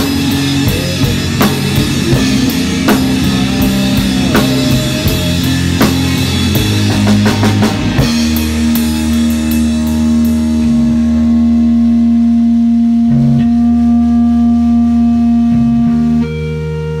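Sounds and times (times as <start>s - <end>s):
drum hits: 0.0s - 11.5s
electric guitar chord ringing: 0.0s - 17.0s.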